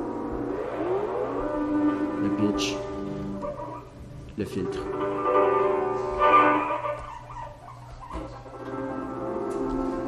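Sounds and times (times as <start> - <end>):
ringing synthesized tone: 0.0 - 7.3.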